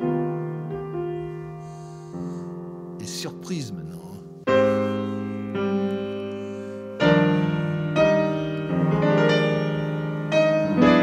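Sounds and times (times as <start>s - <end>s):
slow jazz piano chords: 0.0s - 11.0s.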